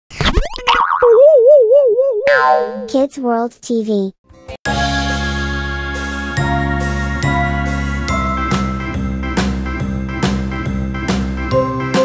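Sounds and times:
springy wobbling boing: 2.2s - 2.9s.

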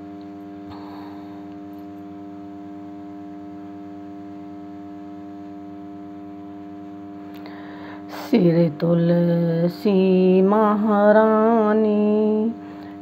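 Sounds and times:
steady hum with overtones: 0.0s - 13.0s.

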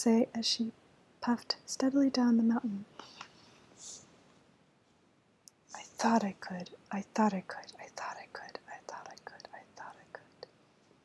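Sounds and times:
woman whispering: 5.7s - 10.5s.

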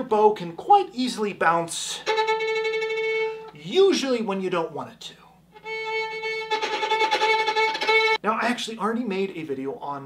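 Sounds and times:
violin bowed note: 2.0s - 3.6s, 5.5s - 8.2s.

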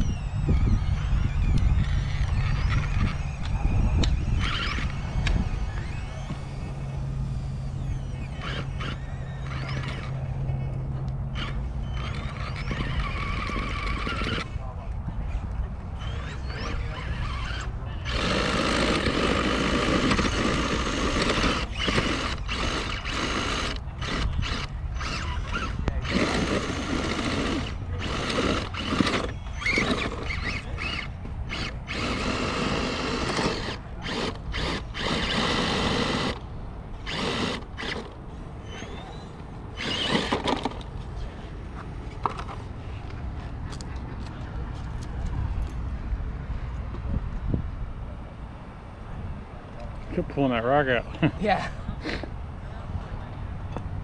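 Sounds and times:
electric motor and gears whining: 0.0s - 14.5s, 16.0s - 41.0s.

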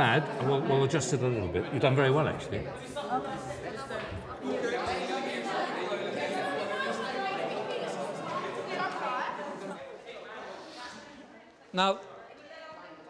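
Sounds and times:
chatter of many voices: 0.0s - 13.0s.

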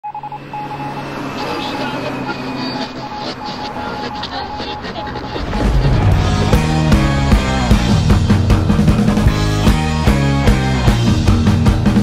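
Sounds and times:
high beeping tone: 0.0s - 8.0s
low hum: 0.2s - 9.6s.

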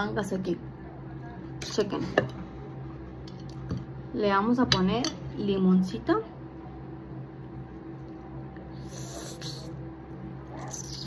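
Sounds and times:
steady low hum: 0.0s - 11.0s
lime squeezed with wet hiss: 10.6s - 11.0s.

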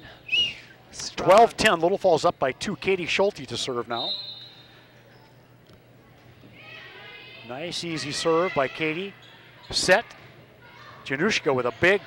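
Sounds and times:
faint crowd voices: 0.0s - 12.0s.

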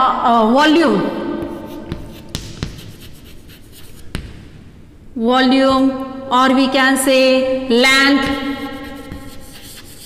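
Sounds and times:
chalk scratching on chalkboard: 1.4s - 4.2s, 8.2s - 10.0s
chalk tapping on board: 1.4s - 4.4s, 8.2s - 10.0s.

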